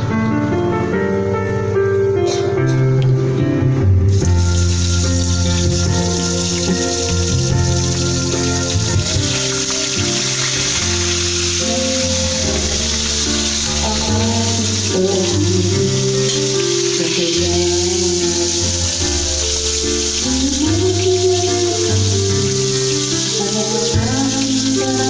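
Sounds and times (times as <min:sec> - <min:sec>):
background music: 0:00.0 - 0:25.0
fish sizzling in hot oil: 0:04.1 - 0:25.0.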